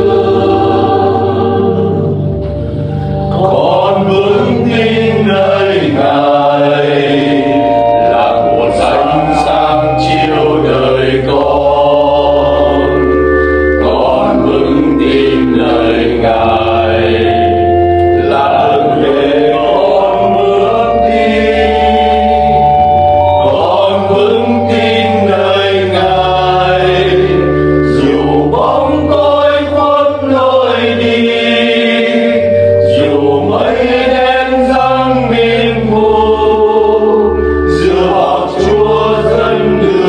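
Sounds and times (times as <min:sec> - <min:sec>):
church choir singing a hymn: 0:00.0 - 0:40.0.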